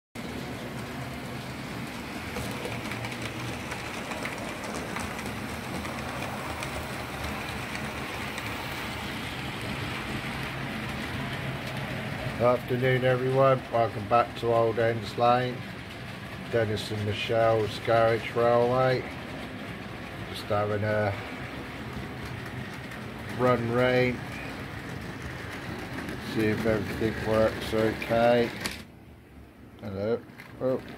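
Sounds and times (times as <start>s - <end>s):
model train motor rumbling: 0.2s - 28.9s.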